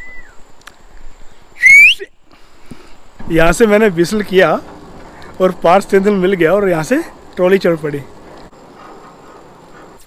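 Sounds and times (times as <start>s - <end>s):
rising signal whistle: 0.0s - 0.4s, 1.6s - 2.1s.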